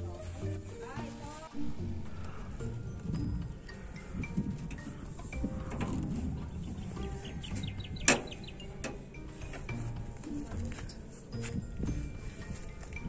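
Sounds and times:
birds chirping: 5.1s - 9.3s.

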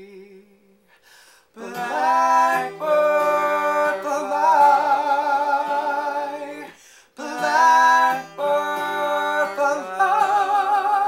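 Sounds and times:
acoustic guitar playing: 0.0s - 11.0s.

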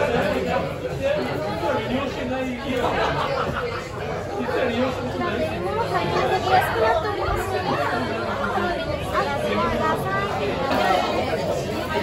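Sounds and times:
diners chattering: 0.0s - 12.0s.

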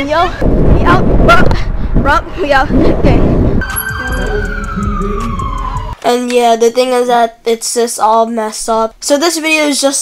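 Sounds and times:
low rumble: 0.2s - 6.0s
siren gliding down: 3.6s - 6.0s.

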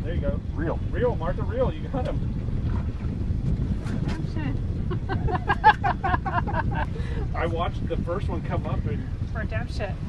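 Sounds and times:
wind buffeting microphone: 0.0s - 10.0s
people laughing: 4.8s - 6.9s.

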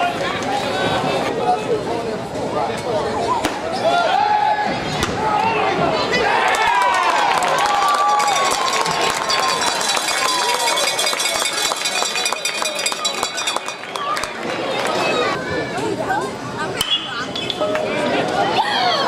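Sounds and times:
crowd cheering and yelling: 3.3s - 16.7s, 17.5s - 19.0s
scattered clapping: 6.5s - 15.0s.

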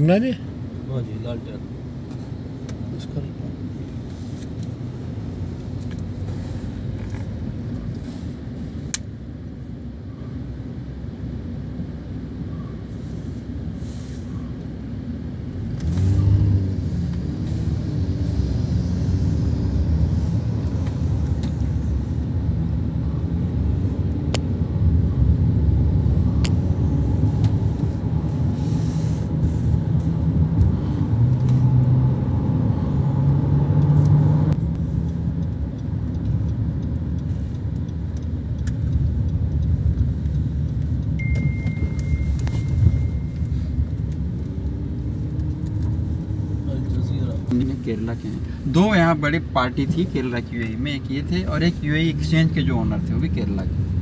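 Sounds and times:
car road and engine noise: 0.0s - 54.0s.

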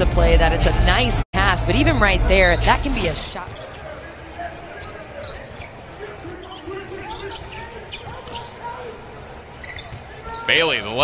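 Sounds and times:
players calling out: 1.4s - 11.0s
sneakers squeaking on hardwood: 4.4s - 10.5s.

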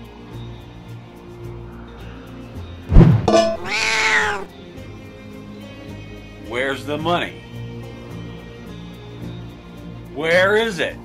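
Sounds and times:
background music: 0.0s - 11.0s
sudden thump: 2.9s - 3.7s
raspy animal screech: 3.4s - 4.5s.

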